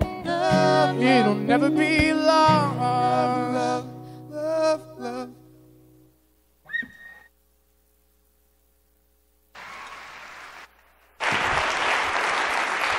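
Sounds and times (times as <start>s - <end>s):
rising whistle-like call: 6.6s - 7.4s
audience applause: 9.6s - 12.9s.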